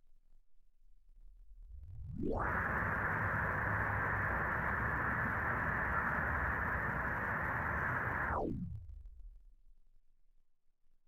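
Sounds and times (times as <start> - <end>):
rushing static-like noise: 2.3 - 8.4.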